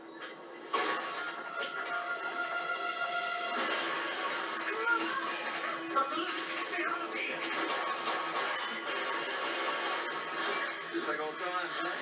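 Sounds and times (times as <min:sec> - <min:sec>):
held steady musical tones: 0:01.0 - 0:08.2.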